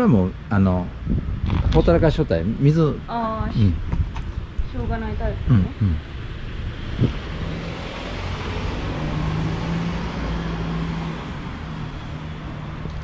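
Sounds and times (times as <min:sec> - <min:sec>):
vehicle engine hum: 0:00.0 - 0:13.0.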